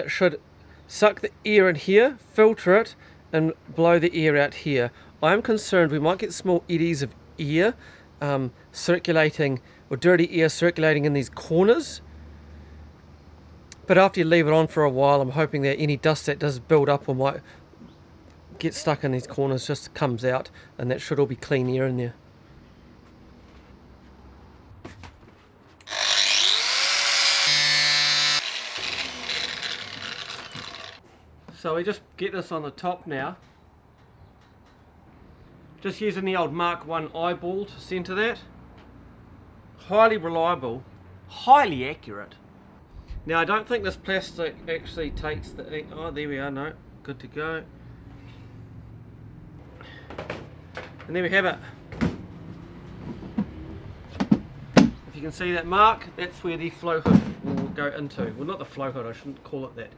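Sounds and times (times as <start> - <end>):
angle grinder cutting plastic: 25.8 - 31.0.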